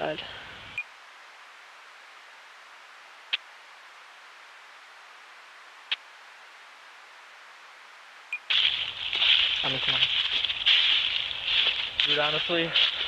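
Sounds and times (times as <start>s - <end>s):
camcorder tape hiss: 0.0s - 13.0s.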